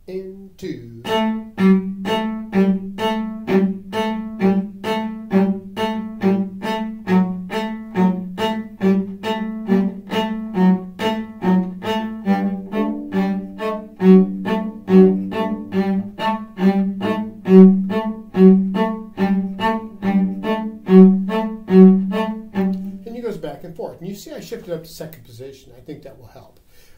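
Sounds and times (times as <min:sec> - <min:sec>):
bowed cello notes: 0:00.0 - 0:25.1.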